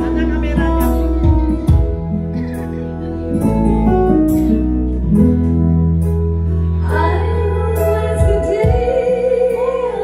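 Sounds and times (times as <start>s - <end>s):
keyboard: 0.0s - 10.0s
steady bass: 0.0s - 10.0s.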